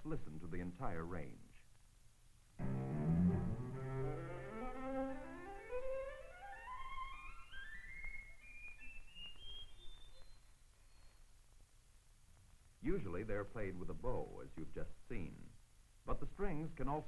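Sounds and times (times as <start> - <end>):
string quartet bowing a rising scale: 2.6 - 8.3.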